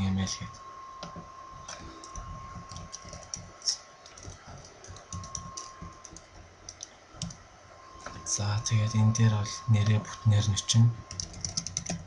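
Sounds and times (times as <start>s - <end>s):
man talking: 0.0s - 0.6s, 8.1s - 11.1s
keyboard typing: 1.0s - 7.4s, 11.1s - 12.0s.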